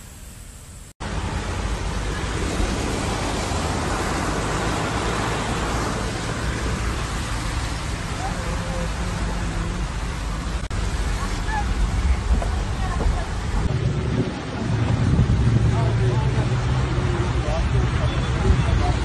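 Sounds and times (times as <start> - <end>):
car driving on wet road: 1.0 - 19.0.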